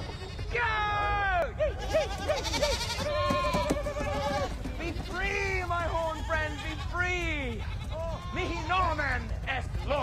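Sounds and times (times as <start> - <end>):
goats bleating: 0.0 - 0.6, 1.6 - 10.0.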